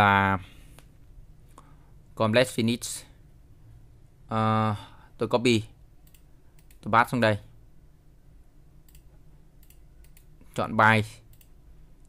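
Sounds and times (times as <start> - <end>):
faint low hum: 0.0 - 12.0
computer mouse clicks: 6.0 - 6.9, 8.8 - 10.3, 11.3 - 11.6.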